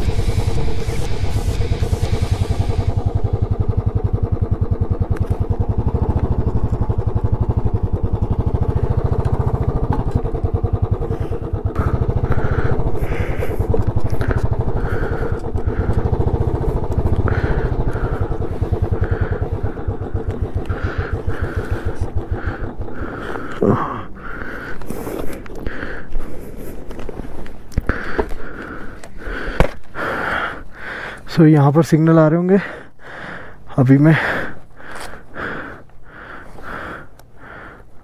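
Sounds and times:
motorcycle engine running slowly: 0.0 - 38.0.

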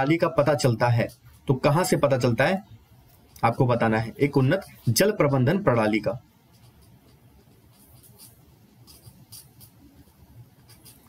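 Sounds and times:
low room hum: 0.0 - 11.0
faint scratching: 0.6 - 11.0.

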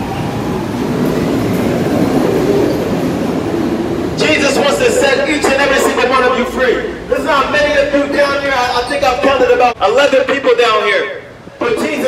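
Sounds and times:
subway train wheels on rail: 0.0 - 12.0.

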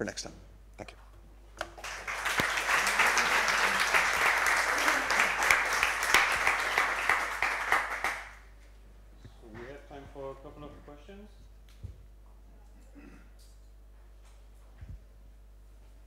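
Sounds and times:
audience applauding: 1.6 - 8.5.

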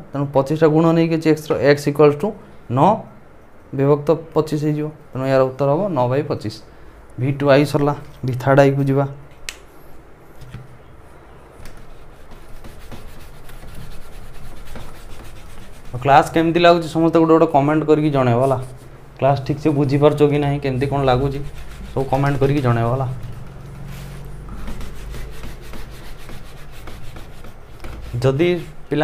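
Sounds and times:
duster rubbing on whiteboard: 11.6 - 16.9, 18.2 - 29.0.

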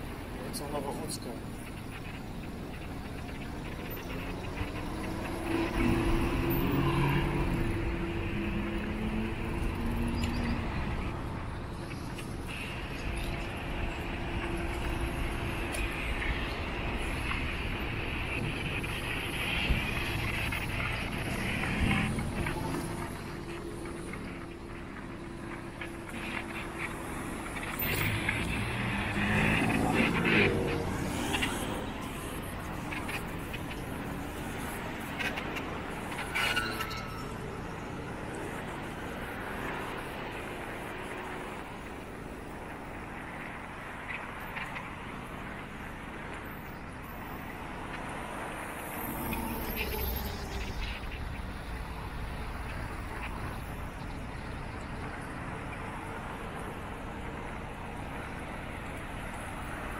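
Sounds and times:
road traffic passing: 0.0 - 59.9.

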